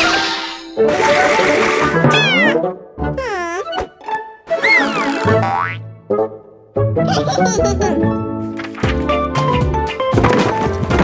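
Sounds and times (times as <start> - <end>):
light background music: 0.7 - 11.0
cartoon falling glide: 1.8 - 2.6, 4.5 - 5.8.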